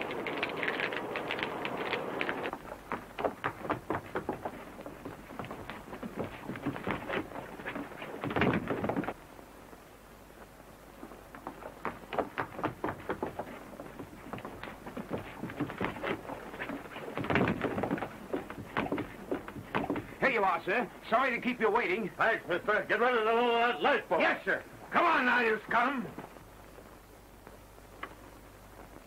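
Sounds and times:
thuds and scuffling of fistfight: 2.4 - 9.2, 11.3 - 20.3.

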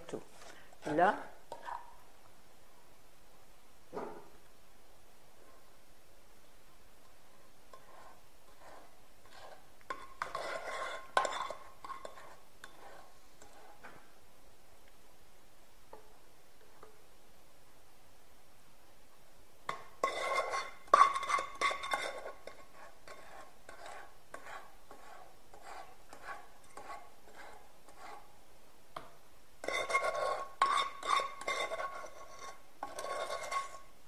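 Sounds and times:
wooden spoon scraping metal pans: 0.1 - 2.0, 7.0 - 14.1, 19.7 - 28.4, 29.0 - 34.0.

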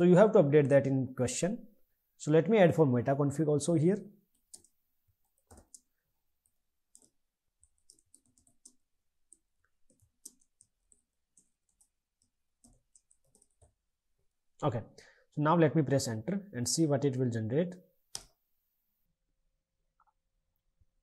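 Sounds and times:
faint keyboard typing: 4.3 - 13.9.

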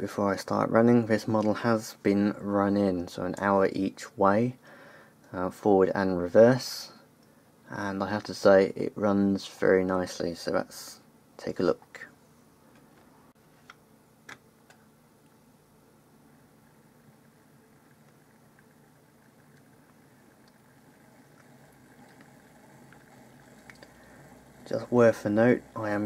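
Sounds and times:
faint motor hum: 0.0 - 26.0.

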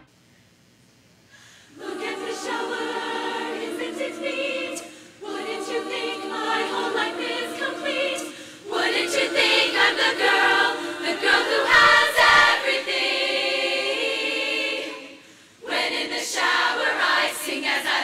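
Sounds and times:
women's choir singing in harmony: 1.7 - 18.0.

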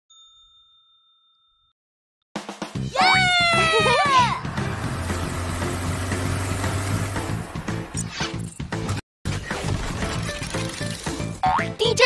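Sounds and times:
bell-like ding: 0.1 - 1.7.

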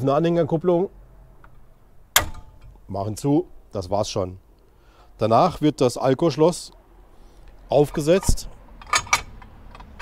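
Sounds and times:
quiet handling noise: 1.4 - 2.9, 7.4 - 10.0.

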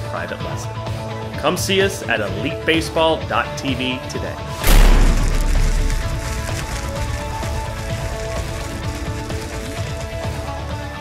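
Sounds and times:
deep low boom: 4.6 - 9.4
fire-like crackling: 4.6 - 10.7.

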